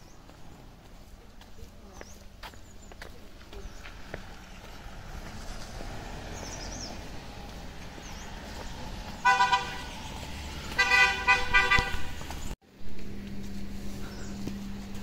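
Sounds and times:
low street background: 0:00.0 - 0:15.0
vehicle horn honking: 0:09.2 - 0:10.0, 0:10.8 - 0:12.2.

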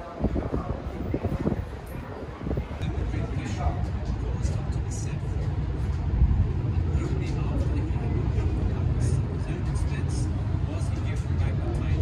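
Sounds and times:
wind on microphone: 0:00.0 - 0:04.7.

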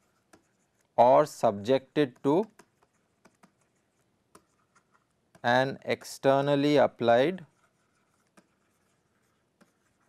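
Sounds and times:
stylus tapping and scratching on tablet: 0:00.0 - 0:10.0.

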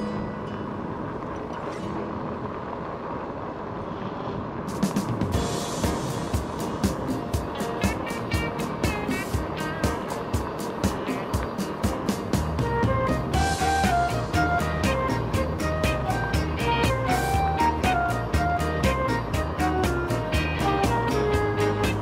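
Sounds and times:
rolling noise on paved road: 0:00.0 - 0:22.0
music with steady beat: 0:04.7 - 0:22.0.

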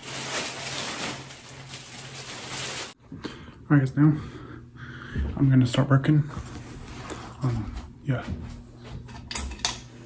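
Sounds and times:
low steady hum: 0:00.1 - 0:10.0.

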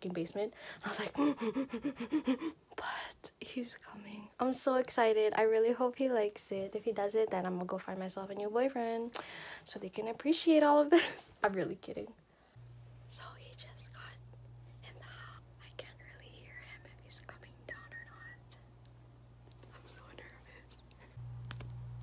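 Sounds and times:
woman whispering: 0:02.2 - 0:04.4, 0:13.1 - 0:18.7, 0:19.6 - 0:21.1
steady low hum: 0:12.2 - 0:22.0.

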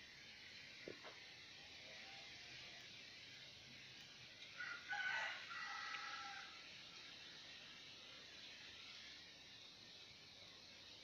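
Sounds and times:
rooster crowing: 0:04.6 - 0:06.6.

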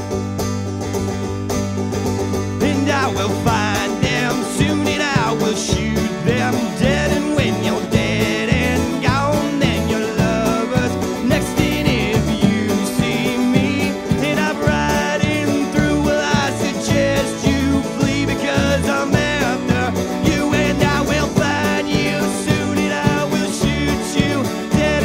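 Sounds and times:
folk-rock band playing: 0:00.0 - 0:25.0
picked banjo: 0:00.0 - 0:25.0
plucked electric bass: 0:00.0 - 0:25.0.

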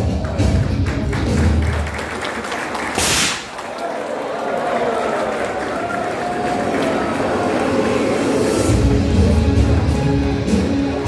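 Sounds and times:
confetti cannon blast: 0:03.0 - 0:03.5.

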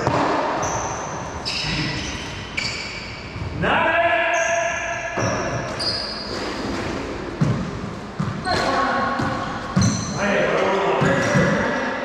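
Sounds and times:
sneakers squeaking on hardwood: 0:00.0 - 0:03.6, 0:04.4 - 0:11.6.

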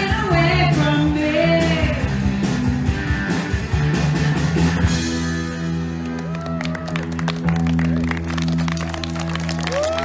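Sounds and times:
audience clapping: 0:06.0 - 0:10.0
audience whooping: 0:06.0 - 0:10.0.

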